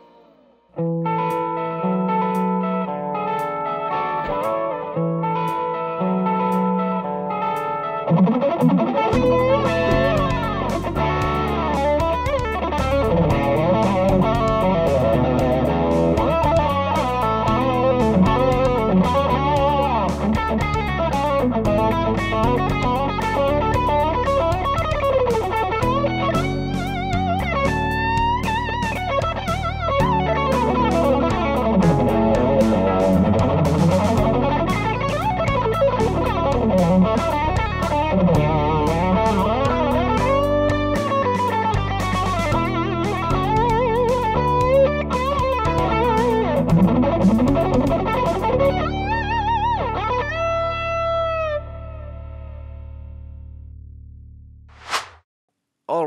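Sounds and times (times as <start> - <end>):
electric guitar lead line: 0.0 - 53.1
backing track: 7.5 - 49.9.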